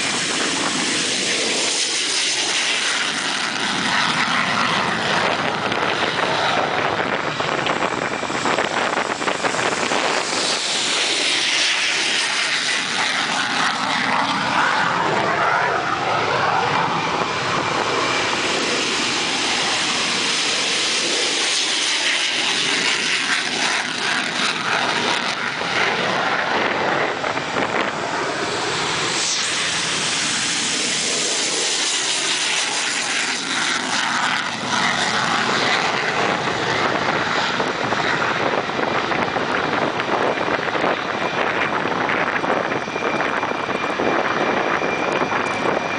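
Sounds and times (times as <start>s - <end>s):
jet engines roaring: 0.0s - 45.9s.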